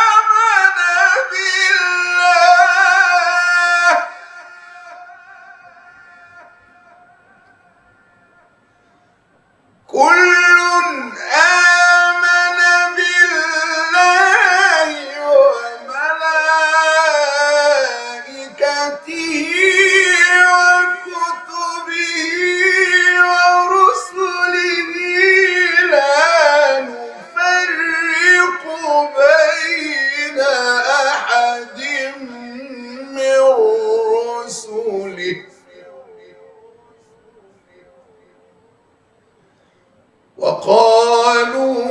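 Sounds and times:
man reciting melodically: 0.0 - 9.1, 9.9 - 38.8, 40.1 - 41.9.

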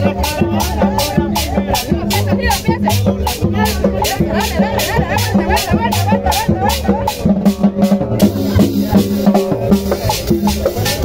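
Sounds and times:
congas and drums: 0.0 - 11.0
cumbia band playing: 0.0 - 11.0
shaker beat: 0.0 - 11.0.

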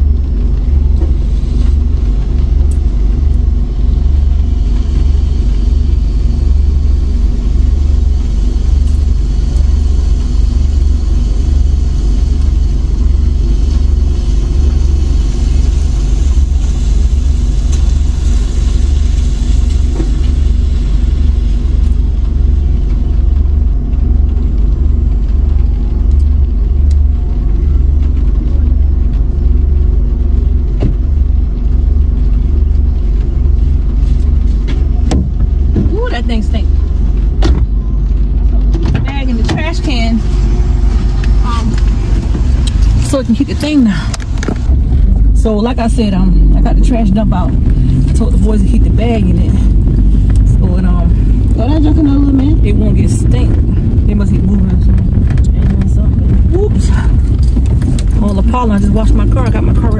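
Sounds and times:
car engine idling: 0.0 - 59.9
steady hiss: 4.4 - 22.0.

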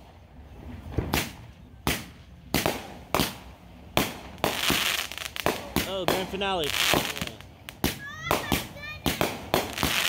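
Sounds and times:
fireworks crackle: 0.0 - 10.0
fireworks shells bursting: 4.0 - 10.0.

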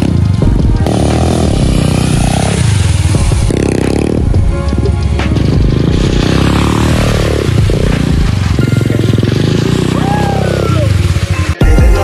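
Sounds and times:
dirt bike engine revving: 0.0 - 11.6
music with vocals: 0.0 - 12.0.

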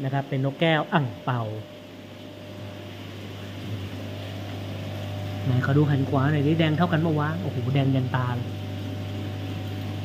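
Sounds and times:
low equipment hum: 0.0 - 10.0.

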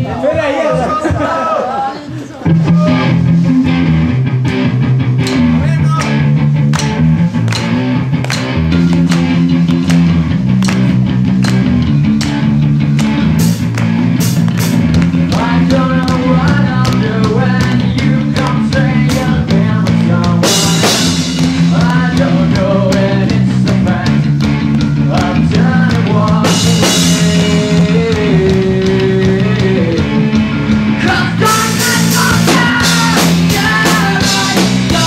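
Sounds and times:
electric guitar: 2.4 - 35.0
drum kit hits: 4.4 - 35.0.

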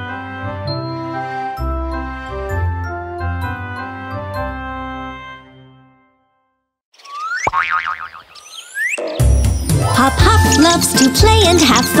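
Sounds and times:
wobbling boing: 7.4 - 8.2.

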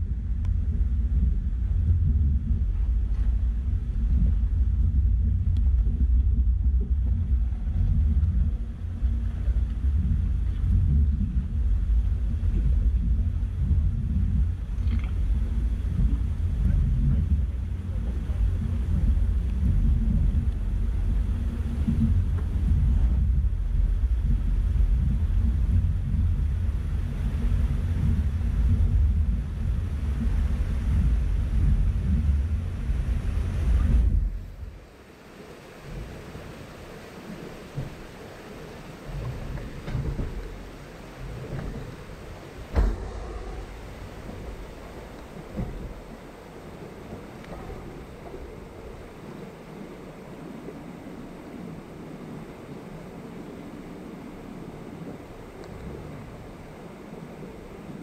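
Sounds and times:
wind buffeting microphone: 0.0 - 58.0
creek rushing hiss: 33.1 - 58.0
off-road vehicle rumbling: 41.3 - 48.9
knocks: 42.7 - 44.6.

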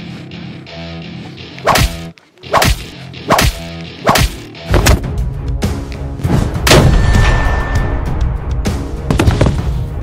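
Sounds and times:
whip-crack punch hits: 1.7 - 5.0.

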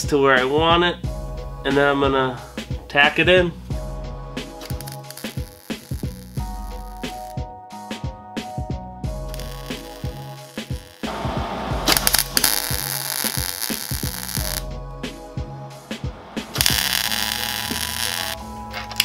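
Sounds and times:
background music: 0.0 - 19.0
welding arc bursts: 4.6 - 7.3, 9.3 - 14.6, 16.4 - 18.4.

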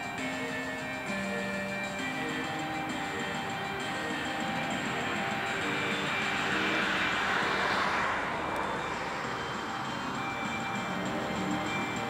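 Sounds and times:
faint music: 0.0 - 12.0
rushing noise: 0.0 - 12.0.

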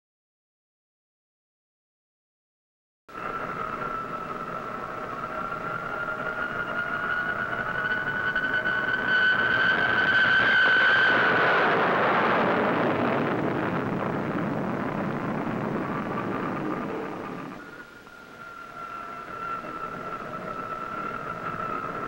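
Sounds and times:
jet engine roar: 3.1 - 22.0
jet engine whine: 3.1 - 22.0.

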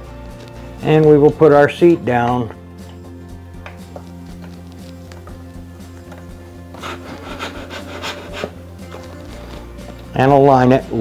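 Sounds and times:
background music: 0.0 - 11.0
seatpost scraping in seat tube: 6.8 - 9.6.

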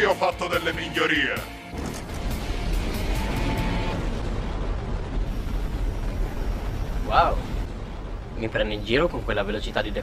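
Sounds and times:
background music: 0.0 - 4.4
thrusters rushing blast with rumble: 1.7 - 10.0.

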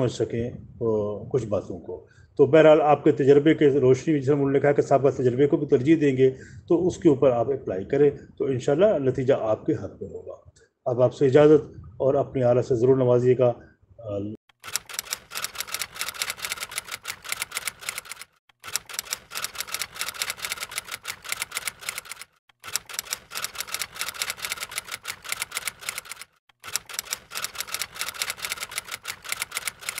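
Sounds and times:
typewriter typing clicks: 14.6 - 30.0.

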